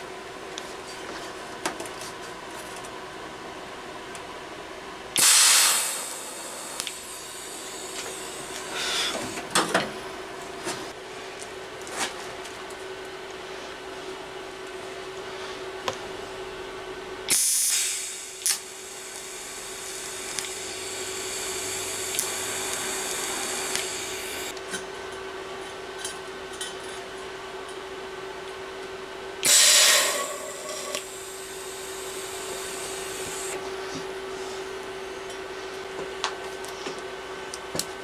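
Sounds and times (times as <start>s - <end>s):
steady hum: 0.0s - 38.0s
loud welding arc bursts: 5.2s - 9.1s, 17.3s - 24.5s, 29.4s - 33.6s.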